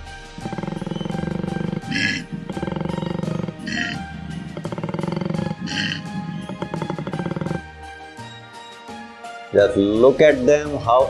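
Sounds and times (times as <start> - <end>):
breathy sounds: 0.0 - 8.3
koala bellowing: 0.0 - 8.6
background music: 0.0 - 11.0.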